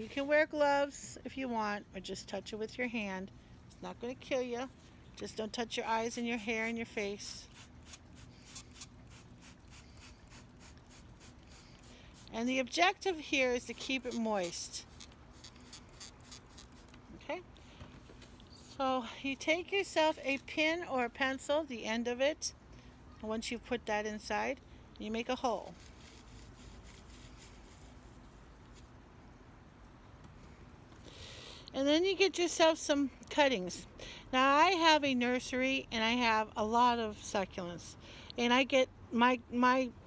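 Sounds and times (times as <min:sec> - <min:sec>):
spray bottle hissing spurts: 0:07.5 - 0:12.3
perlite scratching and crackling: 0:07.6 - 0:17.2.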